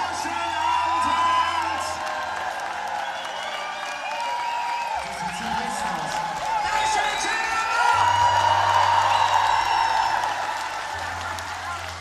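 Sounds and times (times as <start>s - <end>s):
audience cheering and clapping: 0.0s - 12.0s.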